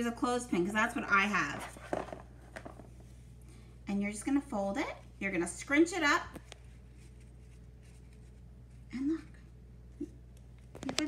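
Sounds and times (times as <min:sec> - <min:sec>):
low room hum: 0:00.0 - 0:11.0
coffee filter rustling: 0:01.3 - 0:03.1.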